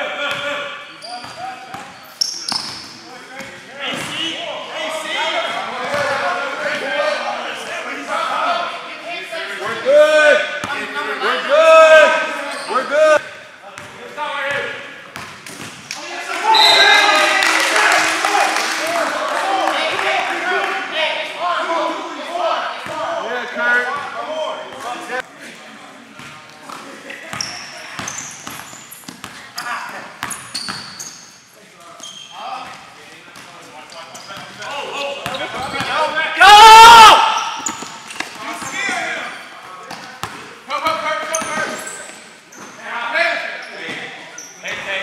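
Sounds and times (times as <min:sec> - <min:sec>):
sneakers squeaking: 0:00.3 - 0:04.4, 0:05.6 - 0:06.8, 0:12.2 - 0:15.9, 0:26.2 - 0:36.0, 0:37.2 - 0:42.8, 0:43.4 - 0:45.0
loud shout: 0:16.0 - 0:20.7, 0:36.3 - 0:37.6
players calling out: 0:33.8 - 0:43.8.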